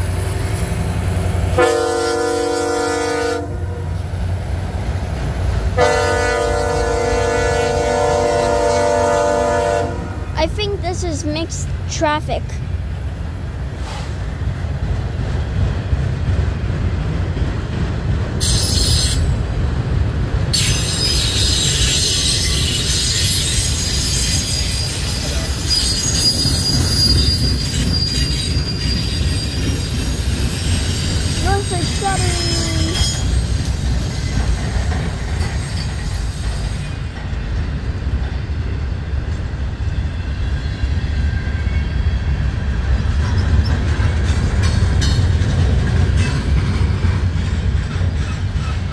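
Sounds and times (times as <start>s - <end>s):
train wheels rumbling on rail: 0.0s - 48.9s
high-pitched wheel squeal: 20.6s - 31.8s.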